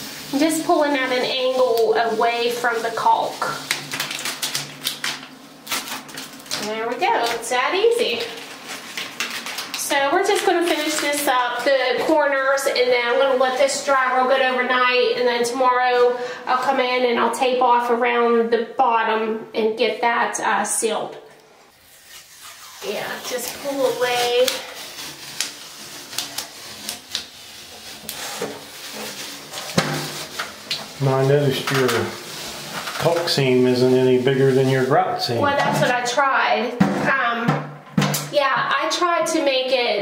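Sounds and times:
tape crumpling and crinkling: 0:00.2 - 0:12.1, 0:21.7 - 0:36.0
person speaking: 0:30.9 - 0:32.4, 0:33.0 - 0:36.0.

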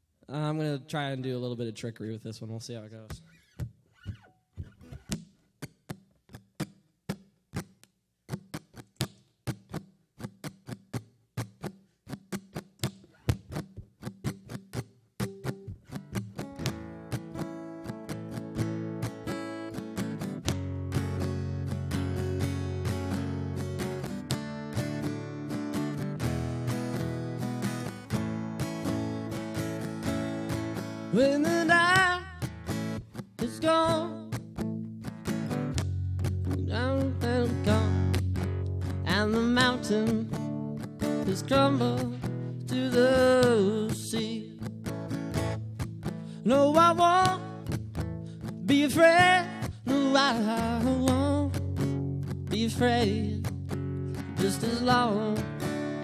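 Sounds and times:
acoustic guitar playing: 0:03.0 - 0:56.0
percussive strikes on guitar: 0:03.1 - 0:31.2, 0:34.1 - 0:41.1.

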